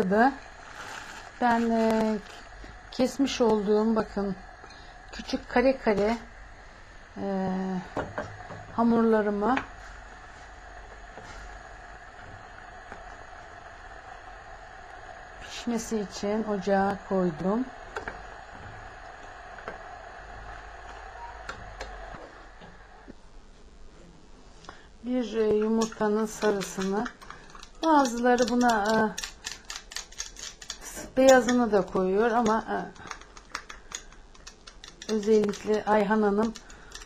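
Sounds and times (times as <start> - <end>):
pot of water boiling: 0.0 - 23.2, 24.7 - 37.0.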